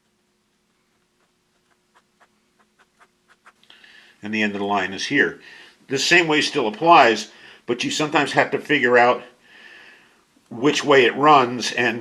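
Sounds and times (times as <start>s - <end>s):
low room hum: 0.0s - 12.0s
ballpoint pen scratching paper: 1.0s - 3.6s.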